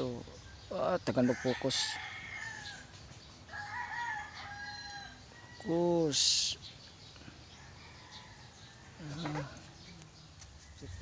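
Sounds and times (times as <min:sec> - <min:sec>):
rooster crowing: 0:01.2 - 0:02.9, 0:03.5 - 0:05.8.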